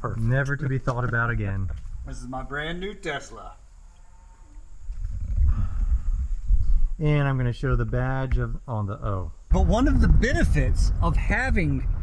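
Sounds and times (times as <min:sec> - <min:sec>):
wind buffeting microphone: 0:04.7 - 0:12.0.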